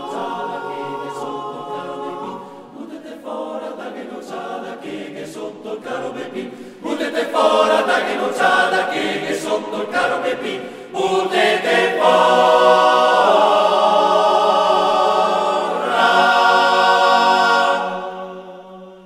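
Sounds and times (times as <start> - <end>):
male choir singing a cappella: 0.0 - 19.0.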